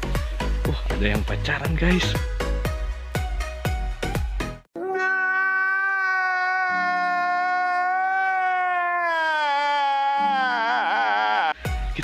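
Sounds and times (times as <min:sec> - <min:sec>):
man crying wail: 0:05.3 - 0:11.6.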